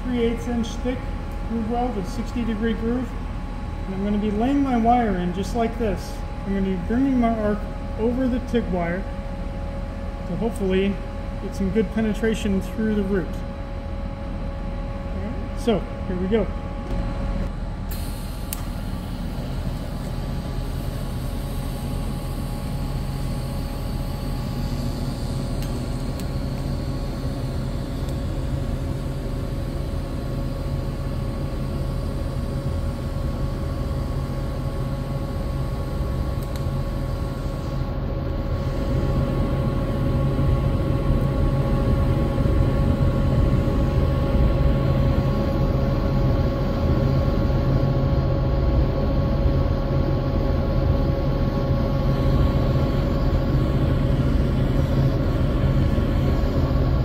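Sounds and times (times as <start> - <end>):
welding arc humming: 0.0 - 57.0.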